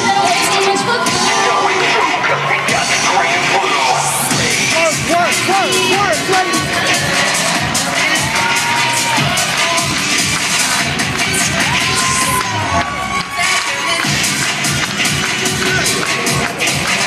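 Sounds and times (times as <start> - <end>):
crowd cheering and shouting: 0.0 - 17.0
loud cheerleading music: 0.0 - 17.0.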